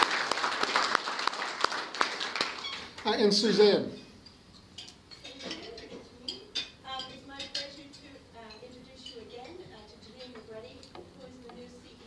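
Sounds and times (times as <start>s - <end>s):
audience applause: 0.0s - 3.2s.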